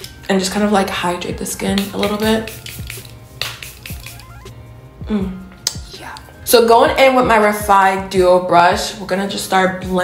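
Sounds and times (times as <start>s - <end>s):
soft background music: 0.0s - 10.0s
spray bottle hissing: 1.8s - 4.5s.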